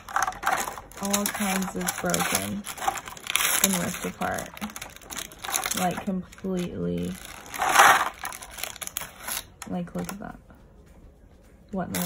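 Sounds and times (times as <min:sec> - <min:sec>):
plastic tray crunching: 0:00.0 - 0:09.6.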